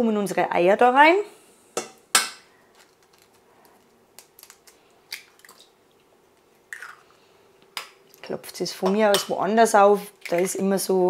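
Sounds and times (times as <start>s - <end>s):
eggshell clicks and crackles: 2.7s - 8.2s.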